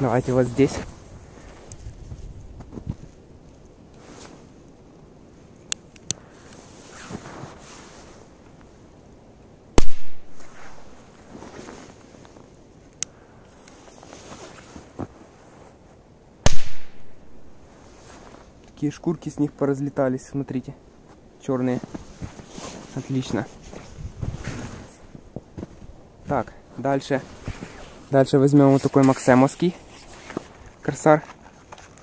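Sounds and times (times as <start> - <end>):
firecracker bang with echo: 9.8 - 10.3, 16.5 - 17.1.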